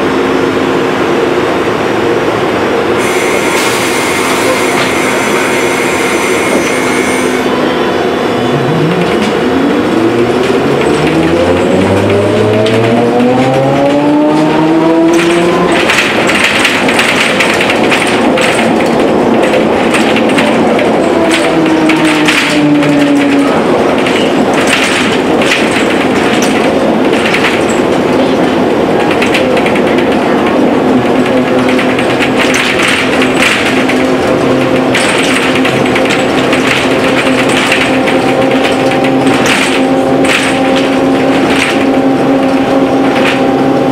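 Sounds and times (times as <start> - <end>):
bus body rattling: 0.0 - 43.9
electric motor whining: 3.0 - 7.6.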